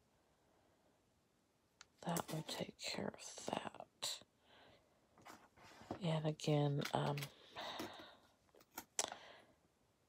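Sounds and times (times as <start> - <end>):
woman whispering: 2.0 - 4.2.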